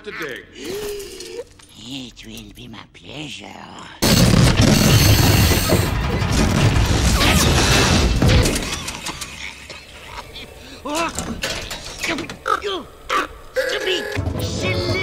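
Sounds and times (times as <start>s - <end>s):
drill grinding and clanking into rock: 4.0s - 9.2s.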